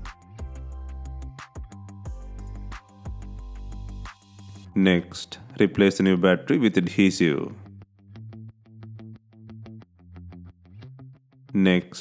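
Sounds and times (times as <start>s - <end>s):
electronic music with plucked synth: 0.0s - 6.4s.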